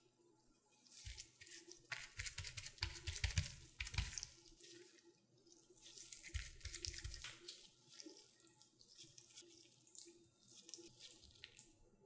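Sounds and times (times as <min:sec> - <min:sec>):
hands handling sticky dough: 0:00.6 - 0:12.0.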